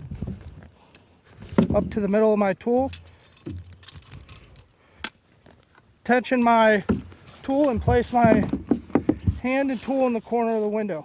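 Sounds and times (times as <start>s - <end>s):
rope handling noise: 2.9s - 10.8s.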